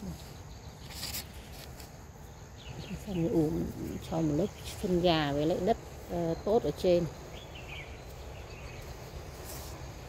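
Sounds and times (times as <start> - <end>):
bird chirp: 2.2 - 10.0.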